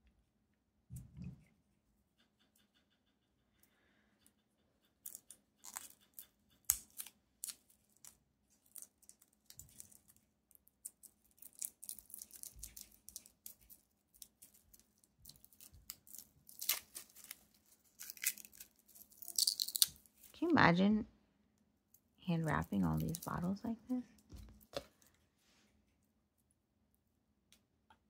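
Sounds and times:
wrapping being peeled and torn: 5.0s - 20.4s, 22.0s - 25.2s.

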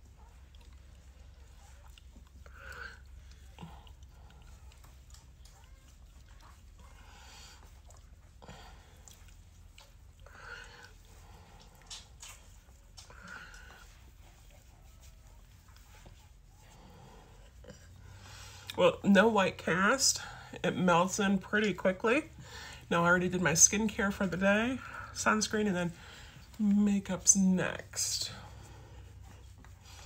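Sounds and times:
low steady hum: 0.0s - 30.0s
fingertips rubbing skin: 0.8s - 18.7s.

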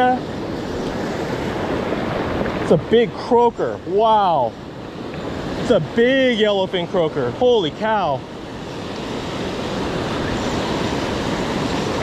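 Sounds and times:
surf washing up beach: 0.0s - 12.0s.

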